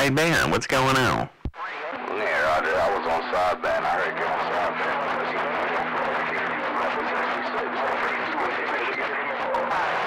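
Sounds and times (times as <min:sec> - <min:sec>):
garbled radio voice: 0:00.0 - 0:10.0
radio static: 0:00.0 - 0:10.0.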